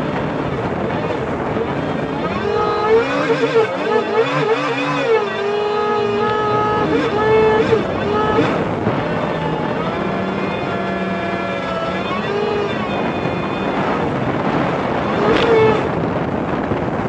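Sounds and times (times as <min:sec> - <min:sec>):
jet ski engine running: 0:00.0 - 0:17.0
water rushing against hull: 0:00.0 - 0:17.0.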